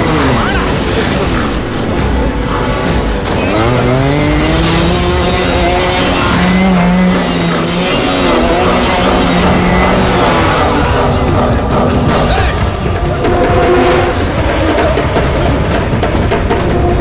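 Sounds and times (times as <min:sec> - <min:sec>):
motorcycle engine revving: 0:00.0 - 0:17.0
tires skidding: 0:00.0 - 0:17.0.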